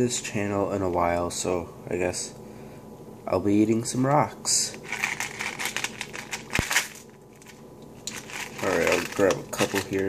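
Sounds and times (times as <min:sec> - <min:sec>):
plastic tube crinkling and clicking: 0:04.8 - 0:10.0.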